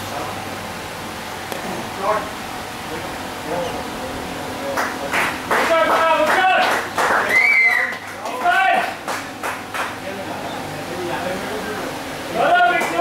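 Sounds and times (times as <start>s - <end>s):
high rising and falling call: 7.2s - 8.0s.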